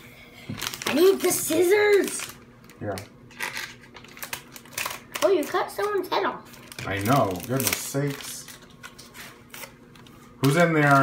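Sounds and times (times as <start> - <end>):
plastic packet crinkling: 0.5 - 11.0.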